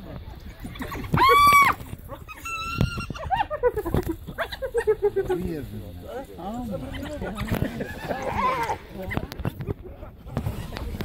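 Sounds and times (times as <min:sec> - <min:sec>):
high-pitched animal squeals: 0:01.2 - 0:03.3.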